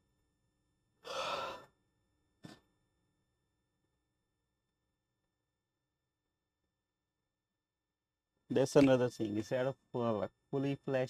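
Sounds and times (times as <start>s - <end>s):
man sighing: 1.1s - 1.6s.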